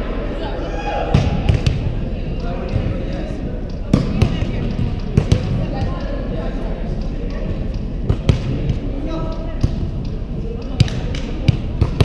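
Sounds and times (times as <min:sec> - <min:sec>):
players' voices: 0:00.0 - 0:12.0.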